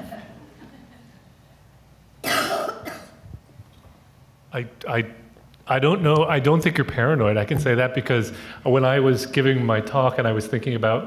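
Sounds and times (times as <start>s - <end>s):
person coughing: 2.2s - 3.2s.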